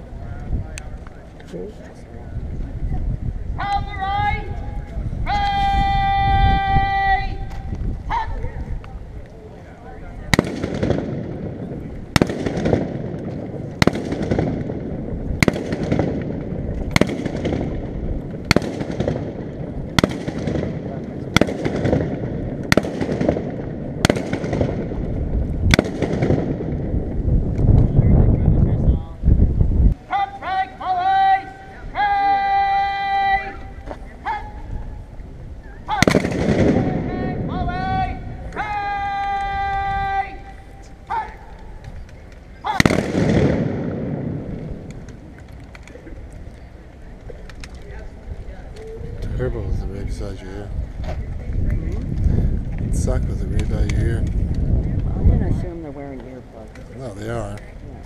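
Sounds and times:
person shouting commands: 3.6 - 8.7, 30.0 - 34.7, 36.8 - 41.6
musket shots echoing: 10.3 - 26.9, 35.9 - 37.1, 42.7 - 45.2.

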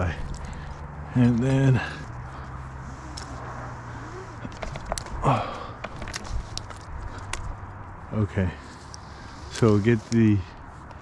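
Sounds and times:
clicks and knocks of climbing hardware: 4.4 - 7.5.

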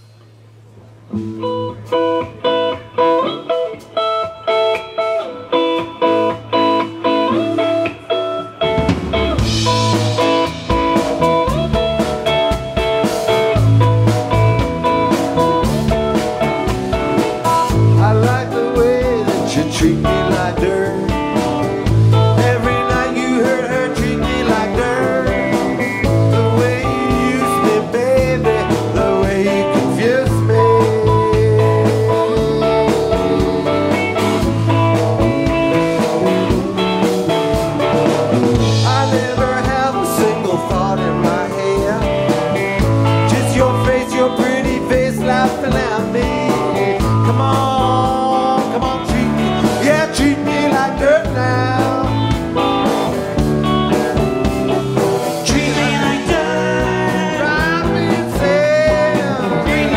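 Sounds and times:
rock band playing: 0.0 - 59.9
electric guitar chord riff: 1.1 - 59.9
man singing: 17.4 - 36.8, 38.6 - 52.6, 55.3 - 59.9.

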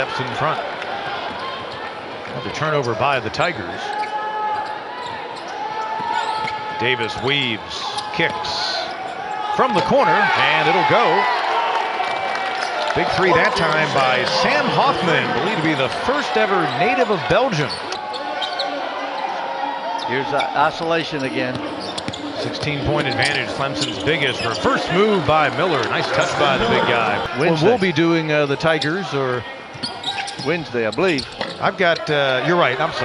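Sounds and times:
arena background noise: 0.0 - 33.0.

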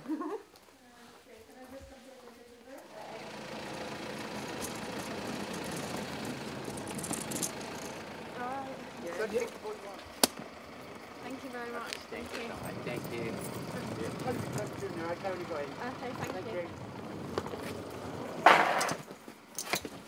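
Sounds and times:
car engine idling: 2.9 - 20.0.

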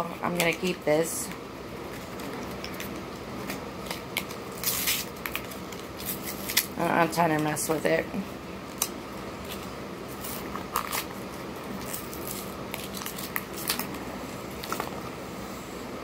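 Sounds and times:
faint room hum: 0.0 - 16.0.

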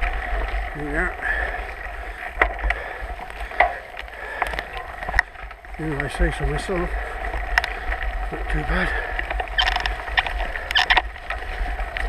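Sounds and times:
bike tyres on dirt trail: 0.0 - 12.0
bike knocks and clicks: 2.3 - 5.3, 9.3 - 11.1.

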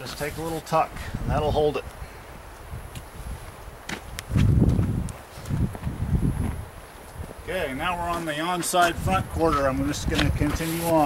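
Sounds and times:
footsteps on ground: 2.9 - 11.0.

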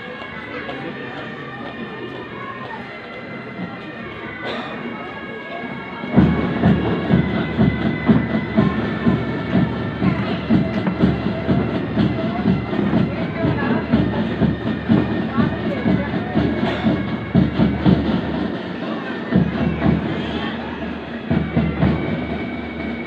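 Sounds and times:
spectators' voices: 0.0 - 23.0.

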